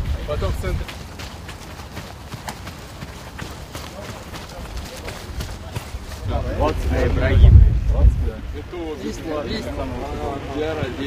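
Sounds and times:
running footsteps: 0.0s - 7.3s
low outdoor rumble: 5.4s - 11.0s.

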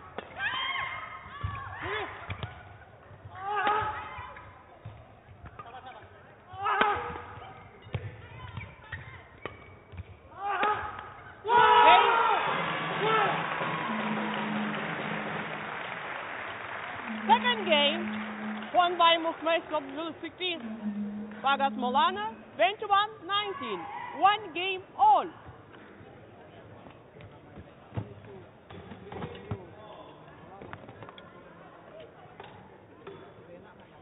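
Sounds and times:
rackets striking shuttlecock: 9.4s - 11.2s
crowd cheering and shouting: 10.4s - 15.7s.

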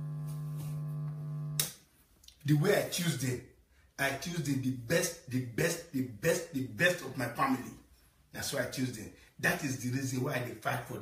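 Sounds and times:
low electrical hum: 0.0s - 10.8s.

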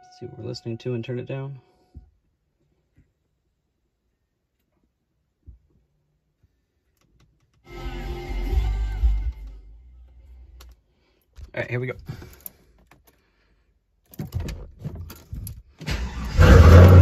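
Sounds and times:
car stereo music with heavy bass: 7.7s - 10.1s.

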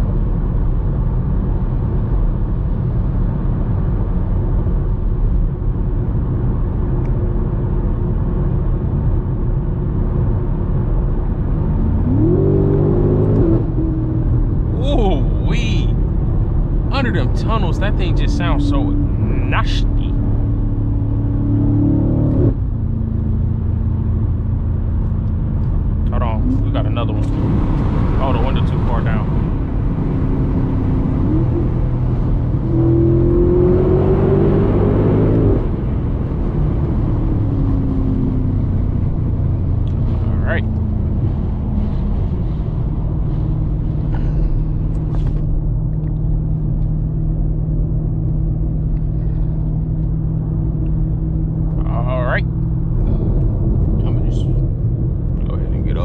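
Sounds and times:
car engine from inside cabin: 0.0s - 56.0s.

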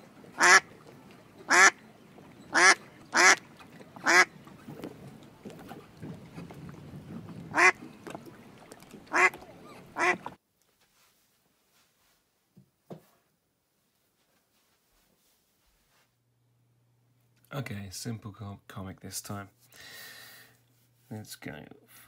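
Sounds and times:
duck quacking: 0.4s - 0.7s, 1.5s - 1.8s, 2.5s - 3.4s, 4.0s - 4.3s, 7.5s - 7.8s, 9.1s - 10.3s.

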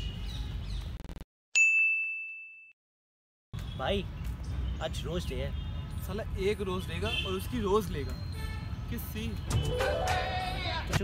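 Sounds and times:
bright bell ding: 1.6s - 2.7s
outdoor background noise: 3.6s - 11.0s.

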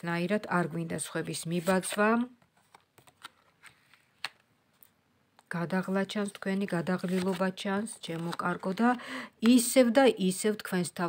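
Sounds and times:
person speaking: 0.0s - 2.4s, 5.4s - 11.0s.

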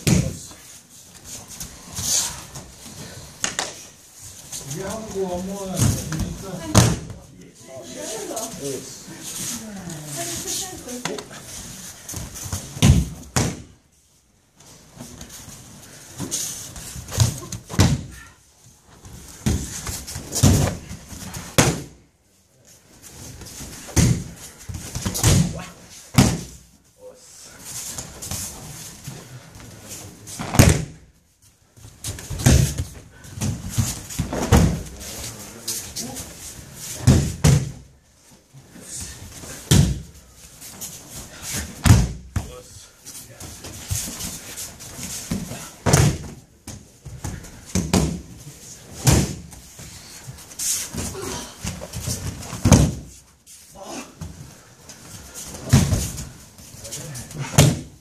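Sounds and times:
bodies thudding onto mats: 19.0s - 22.0s, 30.4s - 31.0s, 32.0s - 35.1s, 36.9s - 37.9s, 41.6s - 42.4s, 43.6s - 48.3s, 48.9s - 49.9s, 50.8s - 53.2s, 55.5s - 56.4s.

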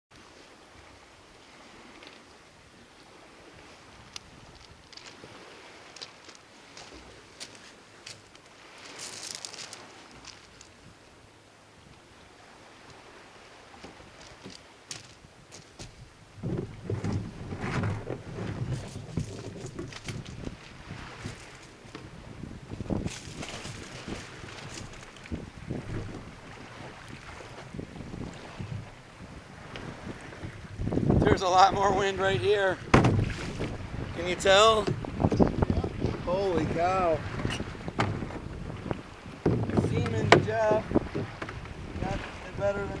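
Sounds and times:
kayak knocks and thumps: 13.7s - 43.0s
wind buffeting microphone: 13.8s - 43.0s.

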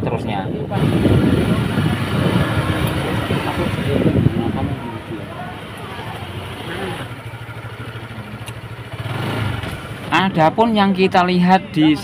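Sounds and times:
street traffic rumble: 0.0s - 12.0s
small motorbike engine running: 0.8s - 10.4s.

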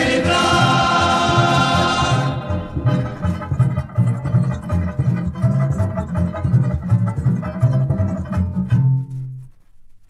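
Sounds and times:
bass guitar: 0.0s - 9.6s
plucked guitar: 0.0s - 10.0s.

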